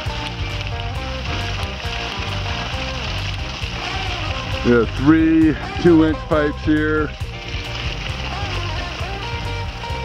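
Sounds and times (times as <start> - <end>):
background music with held notes: 0.0 - 10.0
water pouring from pipe: 0.0 - 10.0.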